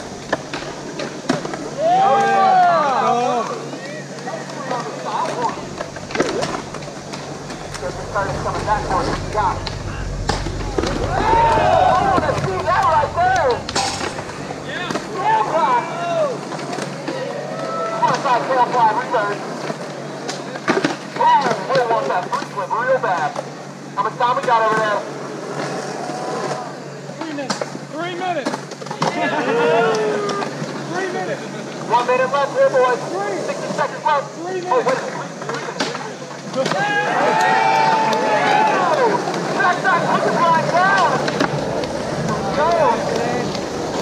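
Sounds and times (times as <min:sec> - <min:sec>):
people talking and calling out: 0:01.6 - 0:17.6
skateboards rolling and clacking: 0:34.8 - 0:44.0.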